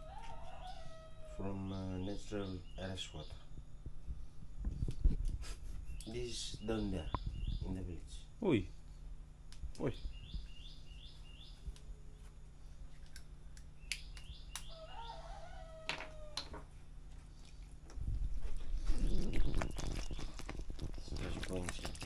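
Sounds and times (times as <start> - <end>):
small bird chirping: 5.8 - 8.2, 9.7 - 11.9, 13.8 - 15.3, 18.8 - 22.0.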